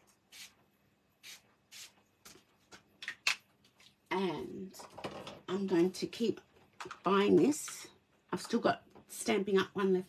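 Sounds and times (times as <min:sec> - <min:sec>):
spray bottle spritzing: 0:00.3 - 0:00.6, 0:01.2 - 0:02.0.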